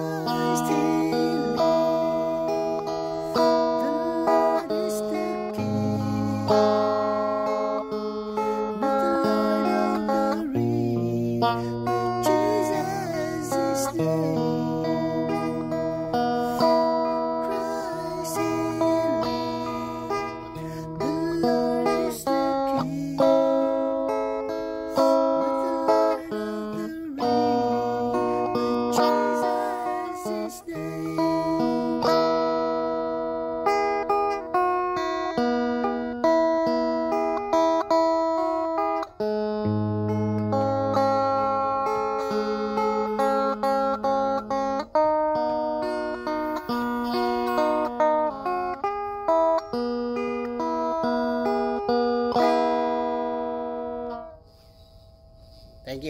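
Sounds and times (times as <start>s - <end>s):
guitar music: 0.0s - 56.0s.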